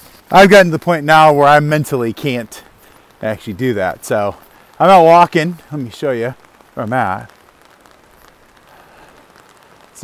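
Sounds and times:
rain on an umbrella: 0:00.0 - 0:10.0.

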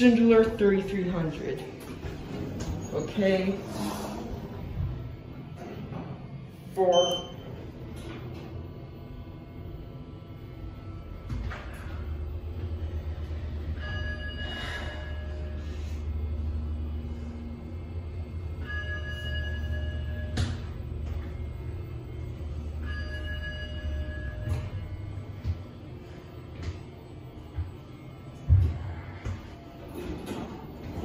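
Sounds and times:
elevator car humming: 0:00.0 - 0:31.0
elevator floor chime: 0:06.8 - 0:08.1, 0:13.3 - 0:15.8, 0:18.3 - 0:21.5, 0:22.1 - 0:26.2.

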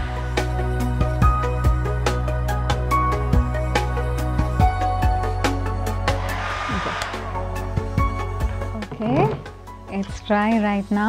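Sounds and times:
background music with beat: 0:00.0 - 0:10.5
hair dryer blowing: 0:06.2 - 0:07.7.

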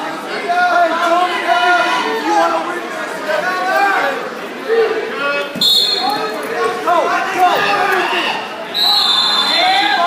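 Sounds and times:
people talking in echoing gym: 0:00.0 - 0:10.0
referee's whistle blast: 0:05.6 - 0:06.2, 0:08.7 - 0:10.0.

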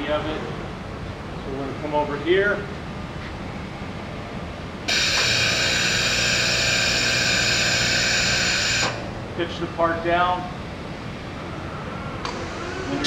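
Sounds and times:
loud steady air hiss: 0:04.8 - 0:09.2, 0:12.2 - 0:13.0.

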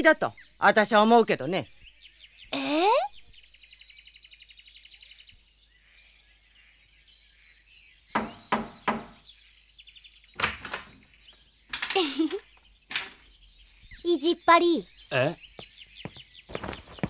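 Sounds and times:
bird chirping trill: 0:00.0 - 0:17.0
knocking on wooden door: 0:08.2 - 0:09.2.

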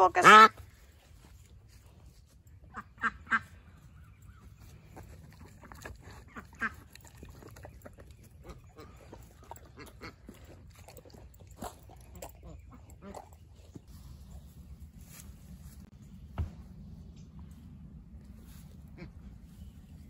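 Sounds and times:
ducks quacking: 0:00.0 - 0:00.6, 0:02.6 - 0:03.9, 0:05.6 - 0:06.9, 0:08.3 - 0:10.5, 0:18.7 - 0:19.6
dogs eating smacking sounds: 0:04.7 - 0:13.8.

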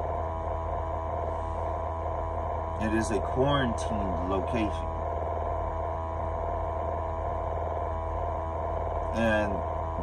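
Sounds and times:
steady higher tone: 0:00.0 - 0:10.0
steady low hum: 0:00.0 - 0:10.0.

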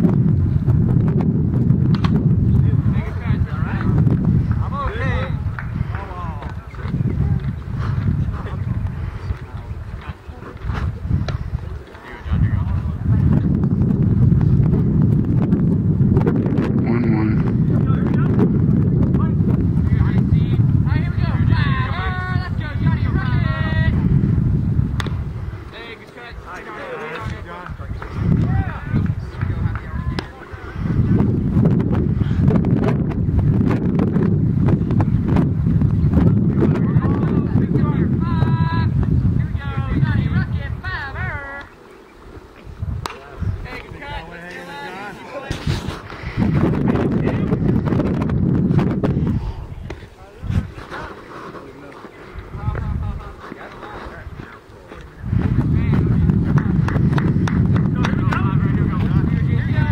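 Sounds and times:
wind rumble on microphone: 0:00.0 - 0:59.9
people calling out and chatting: 0:02.2 - 0:33.6, 0:34.2 - 0:59.9.

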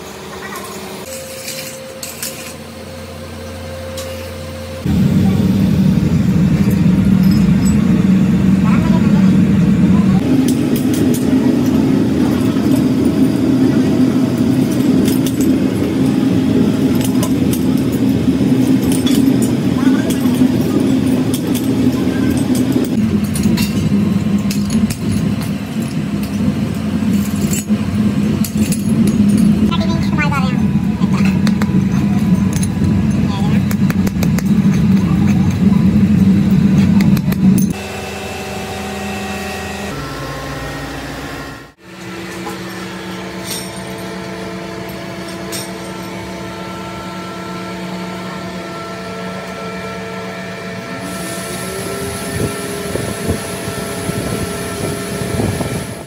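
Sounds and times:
workshop machinery drone: 0:00.0 - 0:56.0.

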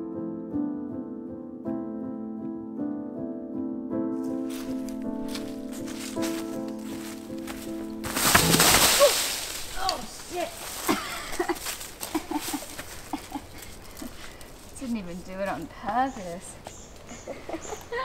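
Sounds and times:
background music: 0:00.0 - 0:09.6
person falling onto dry leaves: 0:04.3 - 0:13.7.

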